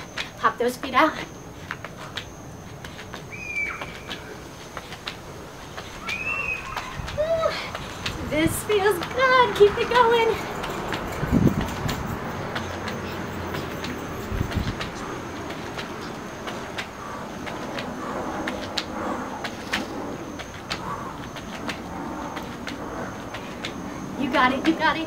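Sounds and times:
outdoor background noise: 0.0s - 25.0s.

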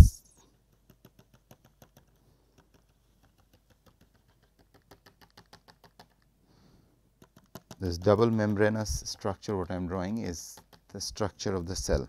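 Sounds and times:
stylus tapping on a tablet: 0.0s - 6.3s, 7.1s - 9.6s, 10.2s - 11.3s.

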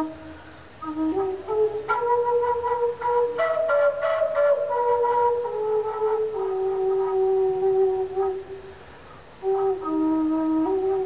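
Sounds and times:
slow flute melody: 0.0s - 11.0s.

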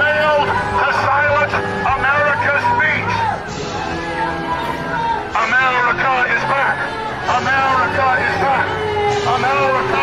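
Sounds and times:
man shouting through megaphone: 0.0s - 3.5s, 4.9s - 10.0s.

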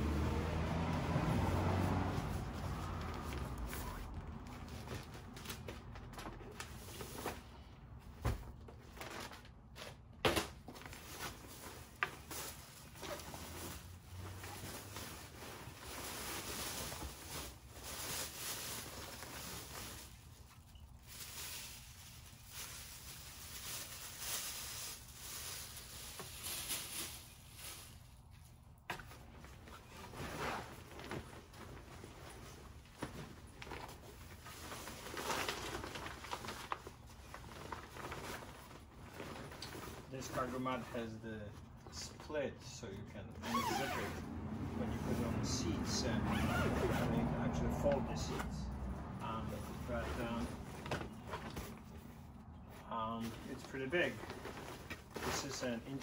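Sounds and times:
fabric and plastic rustling: 0.2s - 42.4s, 43.0s - 44.2s, 44.8s - 56.0s.

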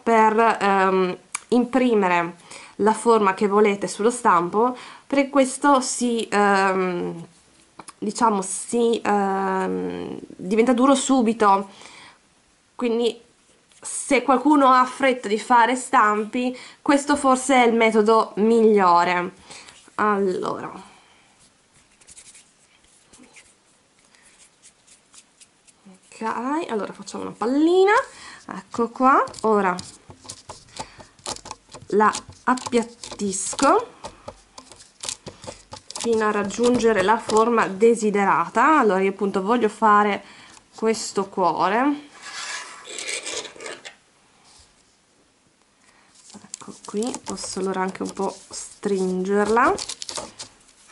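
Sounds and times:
hands kneading putty: 24.3s - 26.6s, 27.2s - 37.7s, 46.2s - 50.9s.

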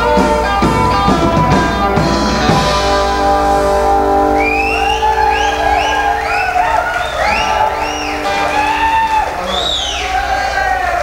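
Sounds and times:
electric guitar chord ringing: 0.0s - 9.4s
short high wails: 4.2s - 10.6s.

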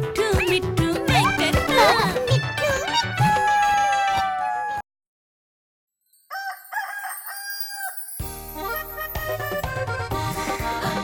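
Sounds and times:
rooster crowing: 6.3s - 8.0s.

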